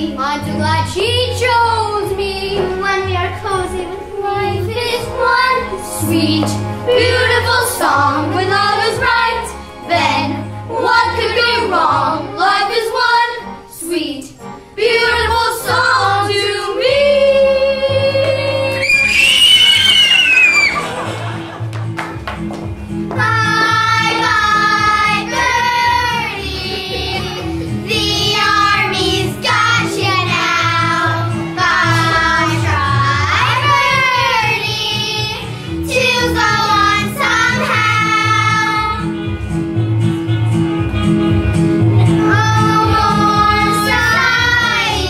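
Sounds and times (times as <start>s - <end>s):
recorded backing music: 0.0s - 45.0s
children singing: 14.8s - 19.2s, 23.2s - 39.0s, 42.1s - 45.0s.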